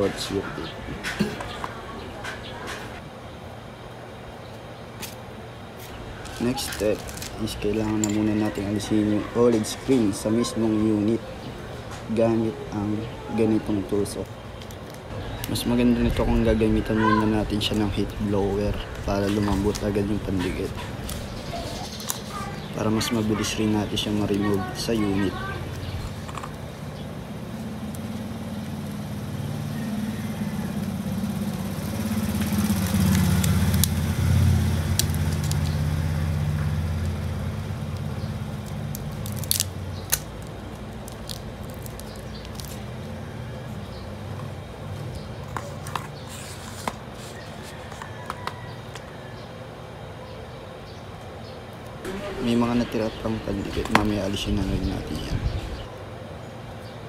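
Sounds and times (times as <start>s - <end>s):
passing vehicle engine hum: 18.6s - 40.0s.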